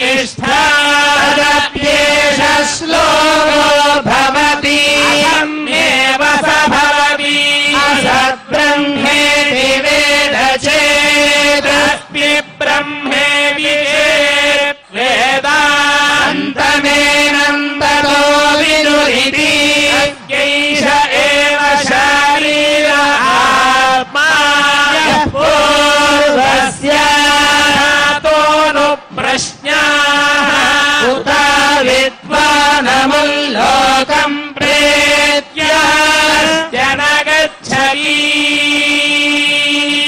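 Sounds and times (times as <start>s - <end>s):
priests chanting: 0.0s - 40.0s.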